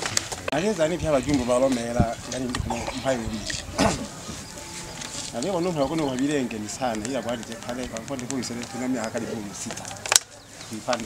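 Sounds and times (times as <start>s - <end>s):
man speaking: 0.5s - 10.1s, 10.7s - 11.0s.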